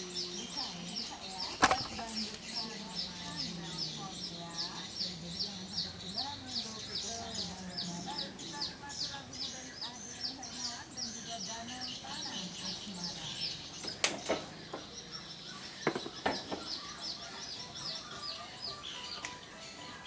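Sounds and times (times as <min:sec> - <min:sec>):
small bird chirping: 0:00.0 - 0:20.0.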